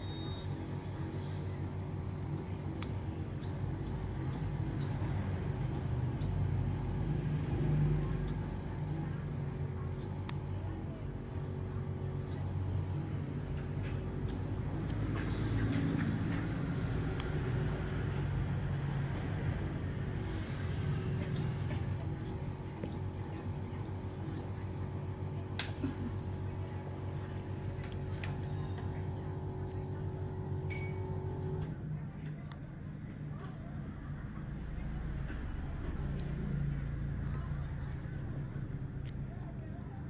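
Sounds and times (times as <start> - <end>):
low machine hum: 0.0 - 40.0.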